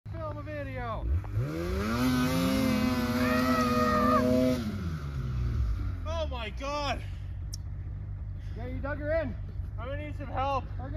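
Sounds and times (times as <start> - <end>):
snowmobile engine revving: 0.3 - 7.2.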